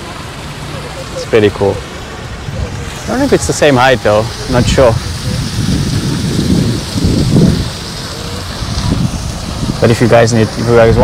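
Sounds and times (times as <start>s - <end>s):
wind buffeting microphone: 1.8s - 11.0s.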